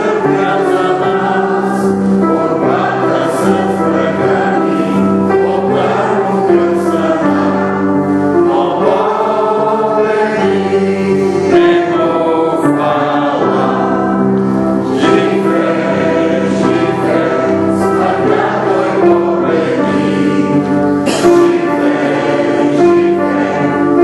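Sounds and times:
choir singing sacred music: 0:00.0 - 0:24.0.

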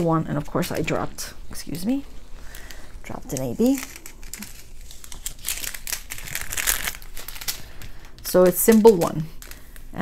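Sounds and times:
plastic bags crinkling: 0:00.0 - 0:10.0.

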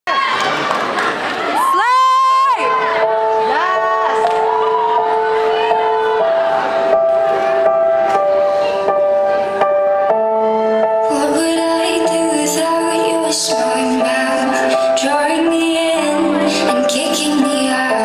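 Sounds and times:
audience cheering: 0:00.1 - 0:06.9
slow music with long held notes: 0:02.6 - 0:18.0.

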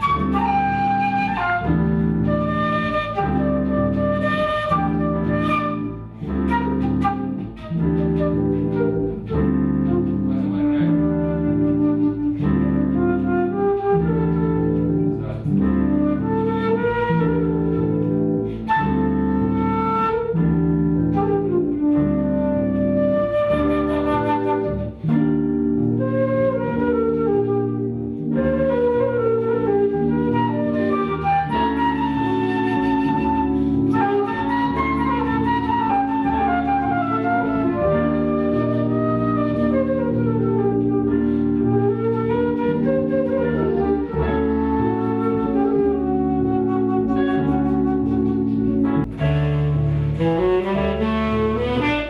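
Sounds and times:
flute playing jazz melody: 0:00.0 - 0:52.0
sustained backing chords: 0:00.0 - 0:52.0.

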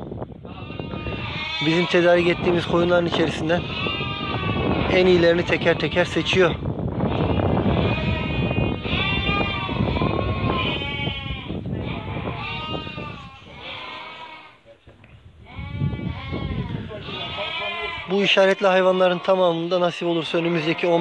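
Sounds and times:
sheep bleating: 0:00.4 - 0:14.6, 0:15.4 - 0:21.0.

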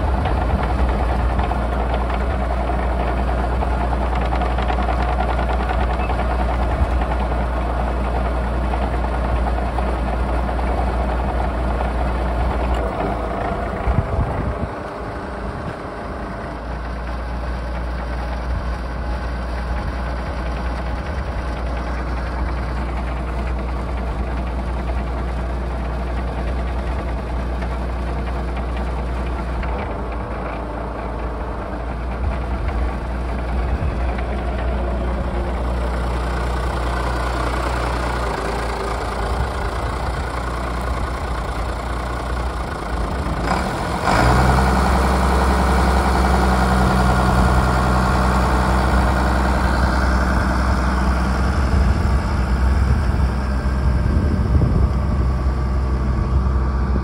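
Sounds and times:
tractor diesel engine idling: 0:00.0 - 0:57.0.

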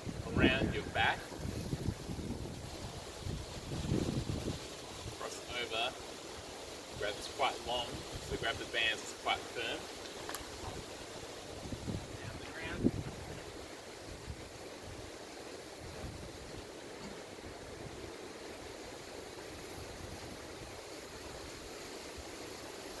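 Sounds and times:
wind on microphone: 0:00.0 - 0:05.8, 0:10.4 - 0:16.8.

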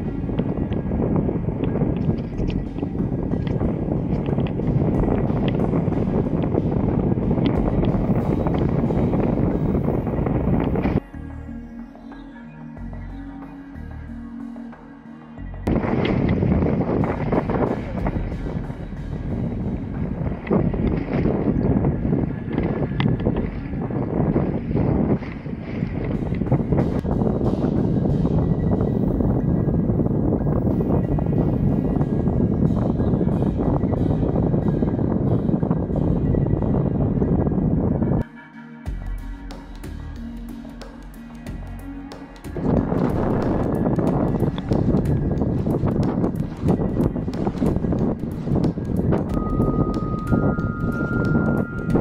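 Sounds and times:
wind buffeting microphone: 0:00.0 - 0:11.5, 0:15.6 - 0:38.3, 0:41.5 - 0:52.0.

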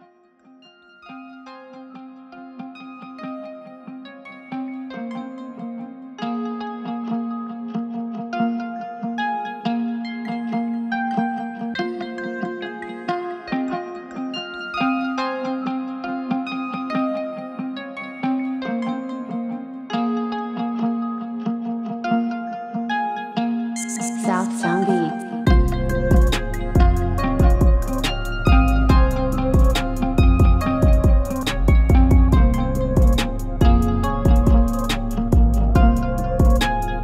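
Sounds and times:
plucked guitar melody: 0:00.0 - 0:37.0.

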